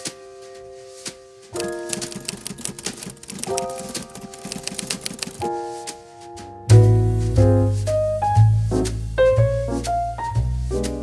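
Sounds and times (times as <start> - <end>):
typewriter keystroke clicks: 1.6 - 5.4.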